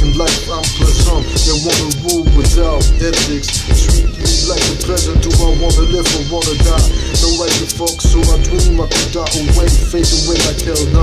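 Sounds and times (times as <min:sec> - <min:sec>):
heavy bass beat: 0:00.0 - 0:11.0
person rapping: 0:00.0 - 0:11.0.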